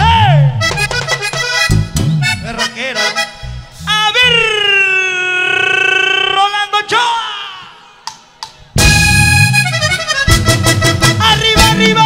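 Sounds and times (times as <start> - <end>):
live band: 0.0 - 4.7, 8.1 - 12.0
button accordion playing: 0.5 - 4.2, 8.8 - 12.0.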